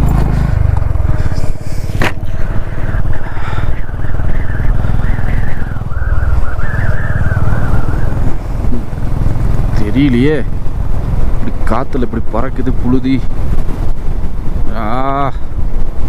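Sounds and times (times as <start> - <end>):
motorcycle engine running: 0.0 - 16.0.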